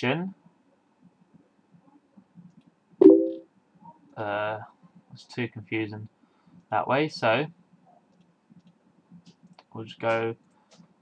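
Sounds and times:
short pitched tone: 3.0 - 3.4.

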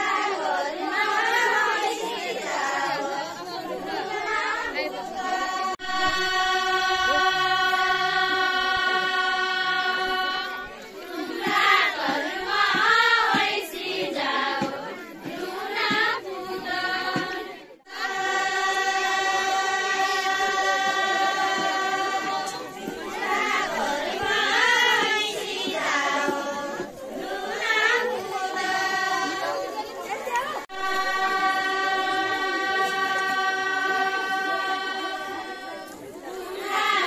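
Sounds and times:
women singing folk song: 0.0 - 37.0.

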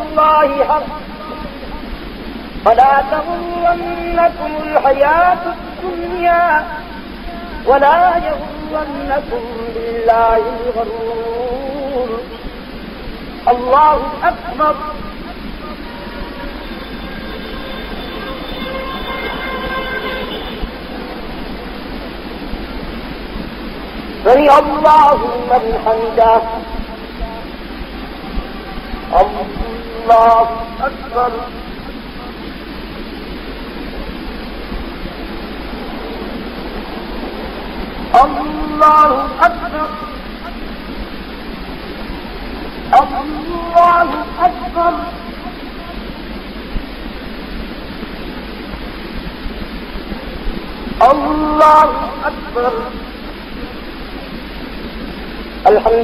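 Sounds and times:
man's voice: 0.0 - 1.8, 2.6 - 12.4, 13.4 - 16.4, 24.2 - 32.4, 38.1 - 40.6, 42.9 - 46.0, 51.0 - 53.7, 55.6 - 56.0
steady hiss and room noise: 0.0 - 56.0.

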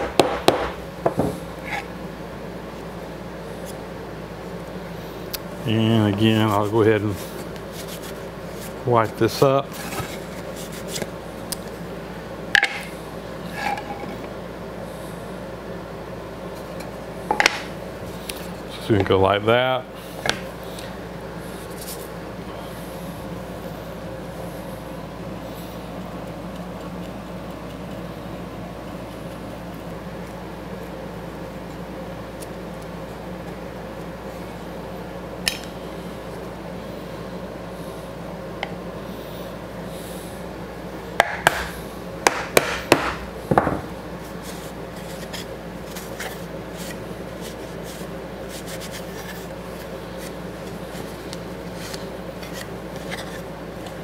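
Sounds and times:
workshop hum: 0.0 - 54.0.

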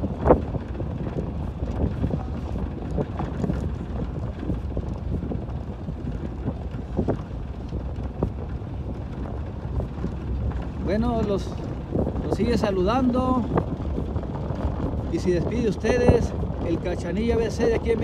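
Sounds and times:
vehicle engine and tyres rumbling: 0.0 - 18.0
wind buffeting microphone: 0.0 - 18.0.

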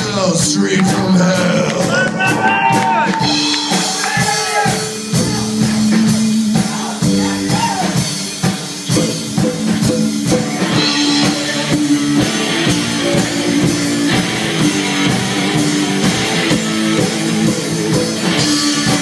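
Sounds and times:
drum kit beat: 0.0 - 19.0
electric guitar: 0.0 - 19.0.

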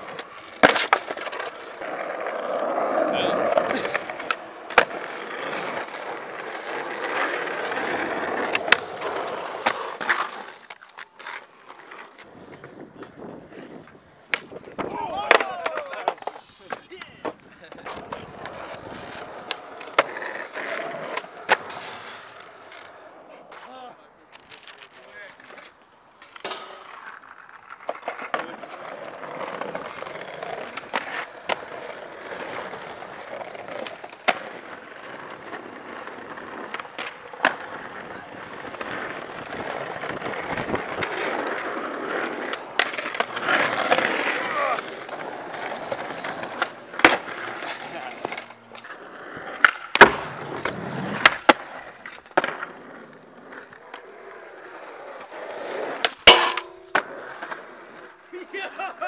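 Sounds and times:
skateboard clacks: 0.0 - 59.0
skateboard wheels rolling on pavement: 0.0 - 59.0.

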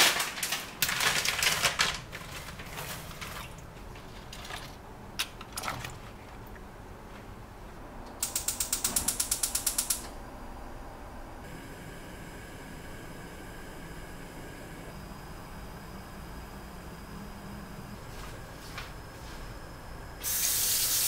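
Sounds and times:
gas burner hissing: 8.2 - 10.2, 19.0 - 21.0.

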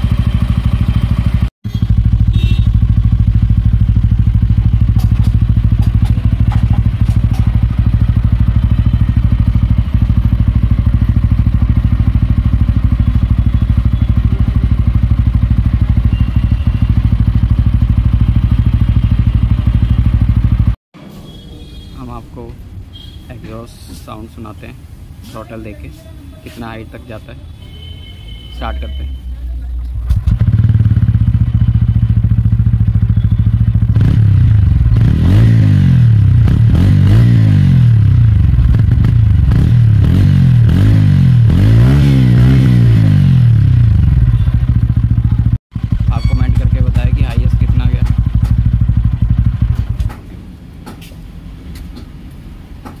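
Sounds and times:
motorcycle engine idling and revving: 0.0 - 23.6, 26.5 - 53.0.

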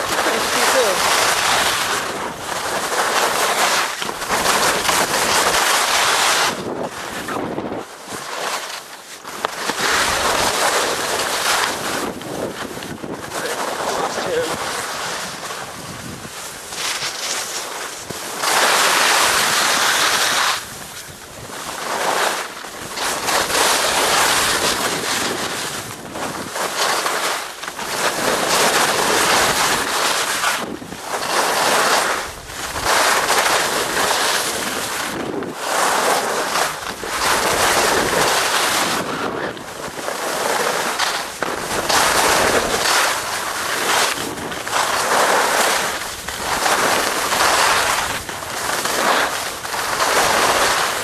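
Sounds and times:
wind rushing over microphone: 0.0 - 8.2, 9.6 - 22.1, 22.7 - 26.8, 27.8 - 51.0
skis scraping over snow: 0.0 - 51.0
wind buffeting microphone: 9.7 - 17.1.

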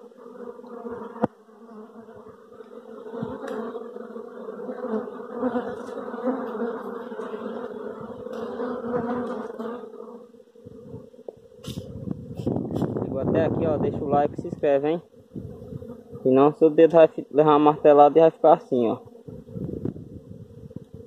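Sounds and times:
bees buzzing: 0.0 - 21.0.

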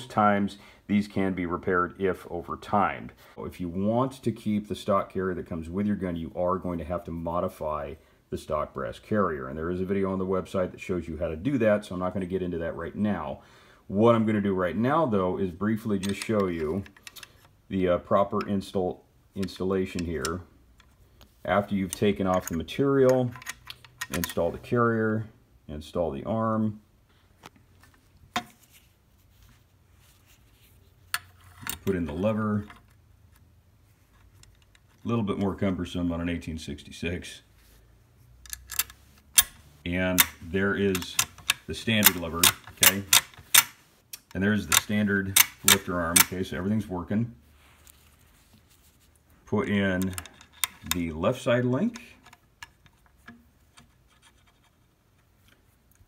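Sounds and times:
metal parts clicking and scratching: 16.0 - 17.5, 21.6 - 24.6, 34.0 - 35.0, 38.4 - 43.8, 44.7 - 46.4, 50.0 - 51.1
steel parts clicking against brass: 38.4 - 46.4.

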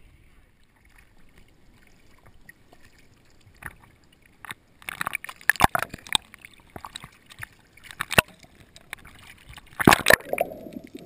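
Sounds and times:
muffled water lapping: 0.0 - 11.0
water splashes: 0.0 - 11.0.

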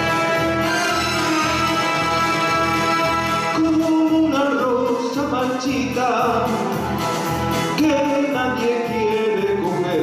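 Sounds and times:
orchestral accompaniment: 0.0 - 4.3
man singing: 0.0 - 10.0.

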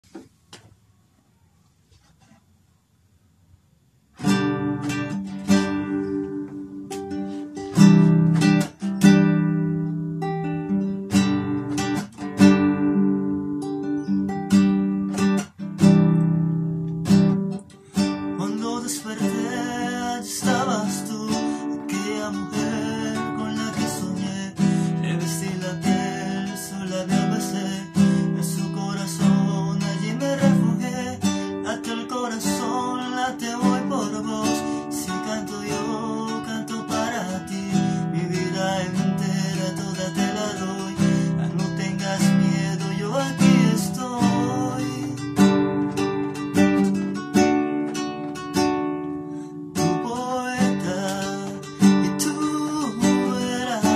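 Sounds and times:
acoustic guitar strumming: 4.2 - 53.9
man singing: 18.3 - 45.8, 49.8 - 53.9.

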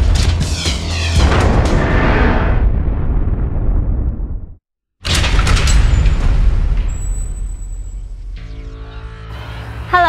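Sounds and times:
deep boom hits: 1.2 - 4.6.

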